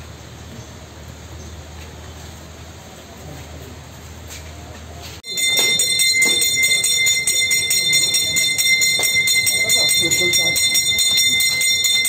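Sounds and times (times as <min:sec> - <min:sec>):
small metal hand bell ringing: 0:05.2 - 0:12.0.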